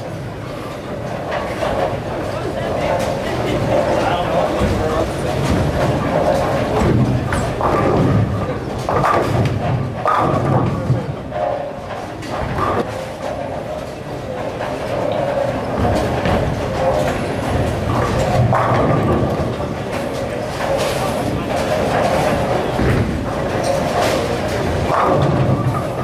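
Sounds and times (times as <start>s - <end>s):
background chatter of voices: 0.0s - 26.0s
rumble of bowling balls: 0.0s - 26.0s
bowling ball crashing into pins: 4.6s - 11.5s, 15.4s - 26.0s.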